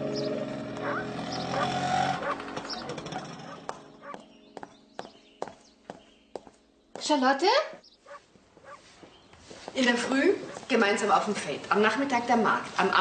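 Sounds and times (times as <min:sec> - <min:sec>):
background music: 0:00.0 - 0:08.6.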